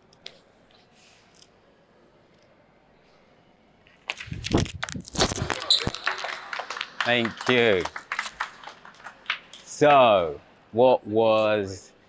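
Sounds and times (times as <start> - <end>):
audience clapping and cheering: 4.2 - 10.0.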